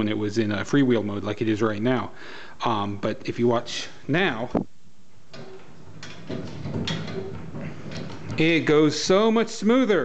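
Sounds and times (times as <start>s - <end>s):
cart crank and flywheel turning: 5.3s - 10.0s.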